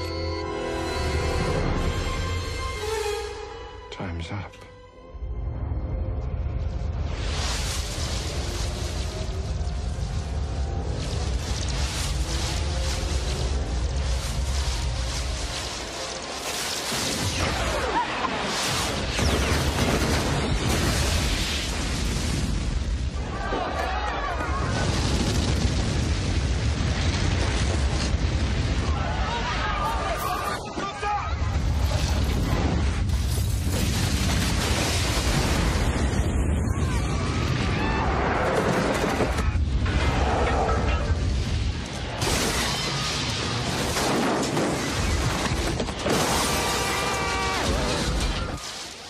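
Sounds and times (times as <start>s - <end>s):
music: 0.0s - 7.3s
deep rumbling: 5.2s - 16.5s
roar of fire and debris: 6.5s - 49.0s
huge explosion: 6.8s - 30.2s, 31.3s - 48.6s.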